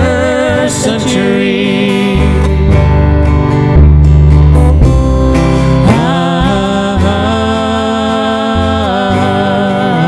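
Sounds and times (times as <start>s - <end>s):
acoustic guitar: 0.0s - 10.0s
double bass: 0.0s - 10.0s.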